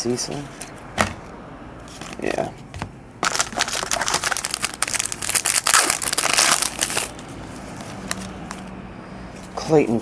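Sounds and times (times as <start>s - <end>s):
foil wrapper crinkling: 3.2s - 7.2s.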